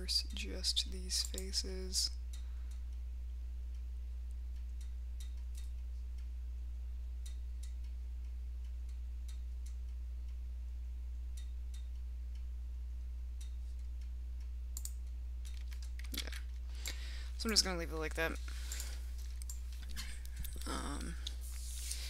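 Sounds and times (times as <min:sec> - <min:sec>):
low electrical hum: 0:00.0 - 0:22.0
faint computer mouse clicks: 0:14.8 - 0:16.1.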